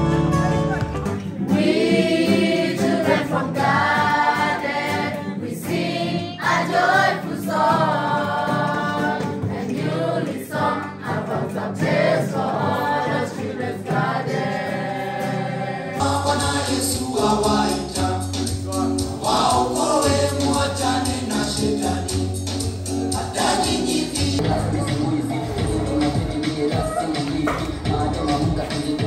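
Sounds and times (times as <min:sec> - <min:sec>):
music with bass line: 0:00.0 - 0:04.4, 0:16.0 - 0:29.0
choir singing: 0:01.2 - 0:22.4, 0:23.0 - 0:29.0.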